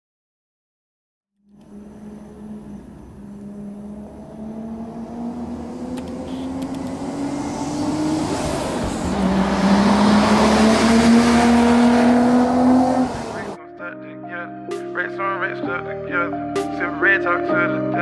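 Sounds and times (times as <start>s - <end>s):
car engine accelerating: 1.4s - 13.6s.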